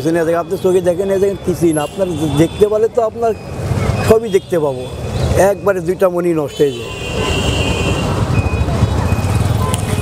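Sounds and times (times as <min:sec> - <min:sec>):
faint high beeps: 0:08.3 - 0:10.0.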